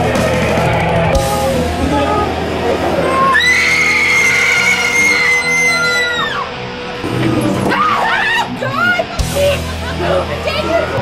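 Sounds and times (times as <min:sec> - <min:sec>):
rising and falling cries: 0:00.0 - 0:09.1
rock music: 0:00.0 - 0:11.0
woman screaming: 0:03.1 - 0:06.6, 0:07.7 - 0:09.1.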